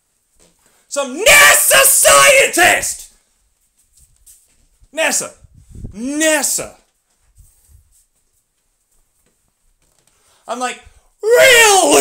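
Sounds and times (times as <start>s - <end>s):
person shouting: 1.0s - 3.1s, 11.2s - 12.0s.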